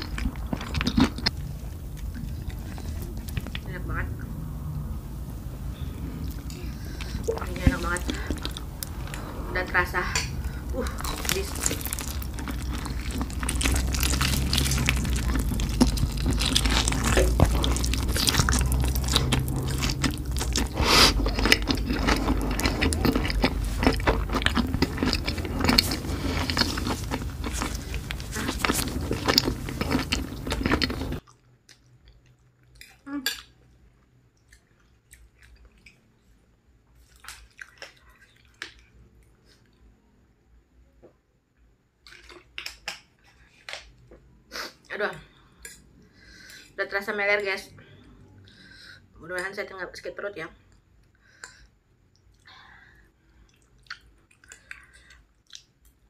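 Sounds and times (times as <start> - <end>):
chewing and slurping noodles: 0.0 - 3.6, 10.4 - 33.0
steady low hum: 0.0 - 31.3.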